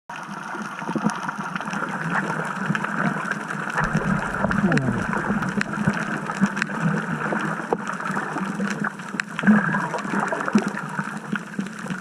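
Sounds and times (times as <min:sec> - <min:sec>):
underwater hiss and rumble: 0:00.1 - 0:12.0.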